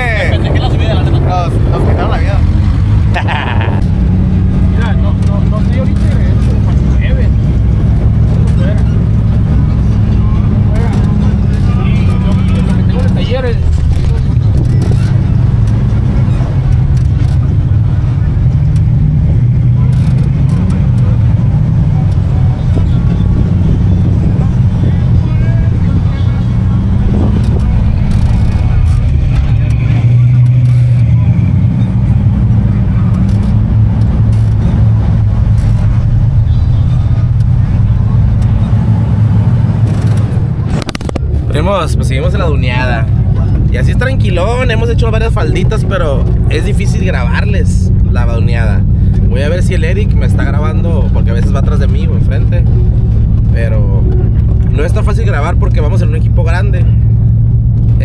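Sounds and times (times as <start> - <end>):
knocks and rattles from bumpy ride: 0.0 - 58.0
off-road vehicle engine under load: 0.0 - 58.0.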